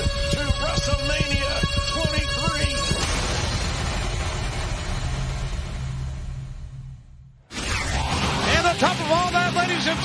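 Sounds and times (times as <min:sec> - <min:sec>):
low rumble: 0:02.1 - 0:07.4.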